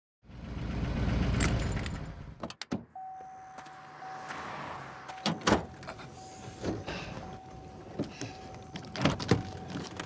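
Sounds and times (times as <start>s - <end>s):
thin steady electronic tone: 3.0s - 4.4s.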